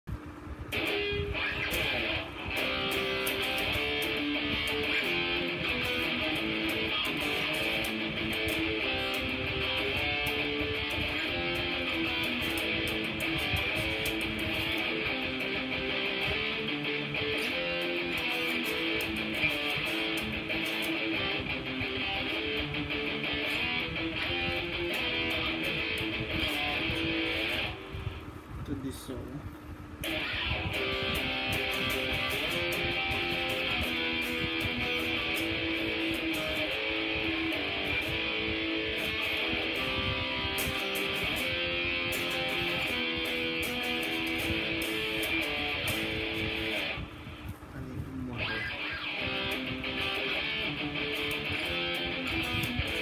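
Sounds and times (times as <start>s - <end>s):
electric guitar through amplifier: 0.0s - 53.0s.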